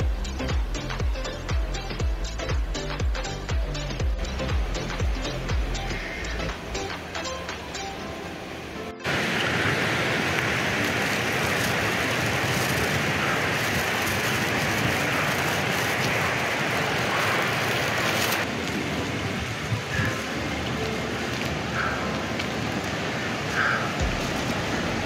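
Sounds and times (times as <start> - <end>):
rushing shallow rocky river: 0.0 - 25.0.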